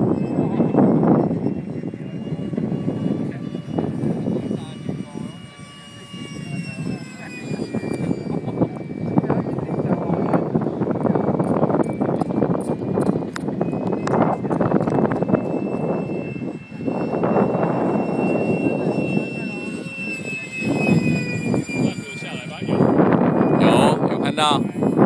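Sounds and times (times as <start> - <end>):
model jet fan whine: 0.0 - 25.0
rough gusty rumble: 0.0 - 25.0.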